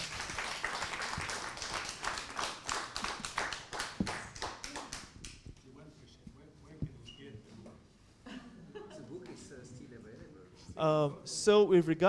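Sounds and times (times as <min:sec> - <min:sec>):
audience applauding: 0:00.0 - 0:05.4.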